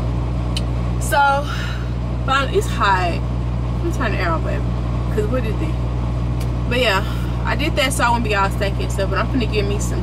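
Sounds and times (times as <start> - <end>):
truck engine humming: 0.0 - 10.0.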